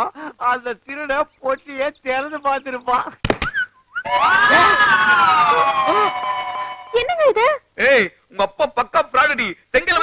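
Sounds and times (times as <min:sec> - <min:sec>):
high siren-like gliding tone: 0:04.0 - 0:07.0.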